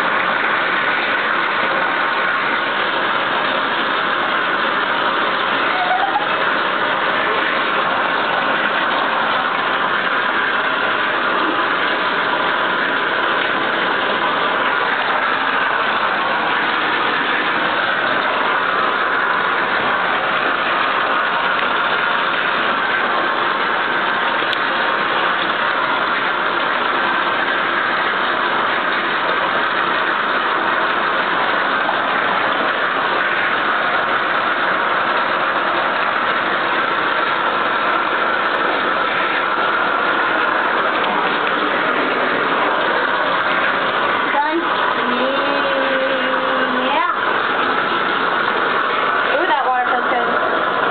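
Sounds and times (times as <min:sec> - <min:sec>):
water pouring into bathtub: 0:00.0 - 0:50.9.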